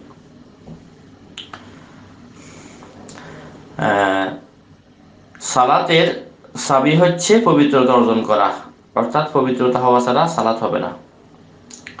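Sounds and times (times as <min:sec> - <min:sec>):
low room hiss: 0:00.0 - 0:12.0
short sharp clicks: 0:11.7 - 0:12.0.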